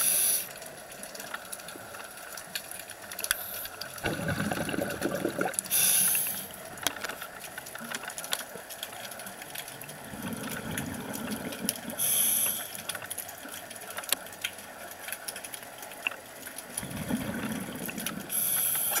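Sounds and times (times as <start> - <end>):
faint crackle of clicks: 0.0 - 19.0
scuba regulator breathing: 3.4 - 6.5, 12.0 - 12.9, 18.1 - 19.0
bubbling rumble: 3.9 - 5.7, 9.7 - 12.0, 16.7 - 18.6.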